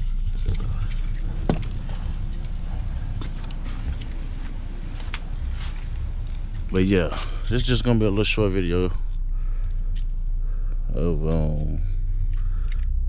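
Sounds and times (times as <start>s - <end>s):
light clicks and rattles: 0.0s - 10.1s.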